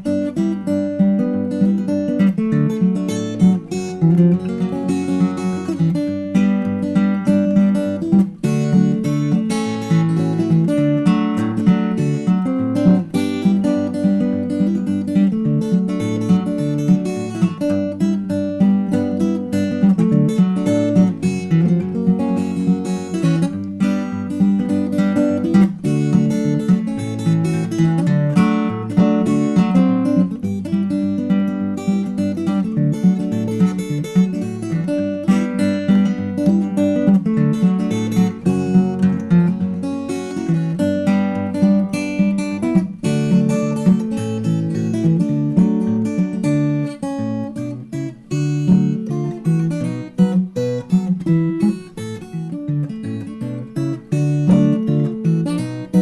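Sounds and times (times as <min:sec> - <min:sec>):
fingerpicked acoustic guitar: 0:00.0 - 0:56.0.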